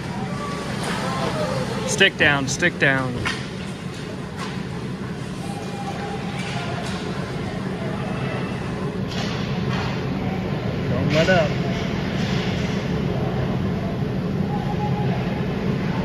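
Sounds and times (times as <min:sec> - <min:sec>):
distant voices: 0:00.0 - 0:16.0.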